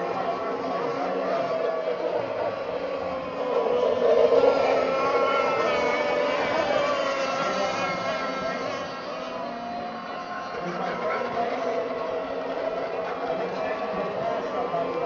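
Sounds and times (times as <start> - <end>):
high-pitched boat motor: 0.0 - 15.0.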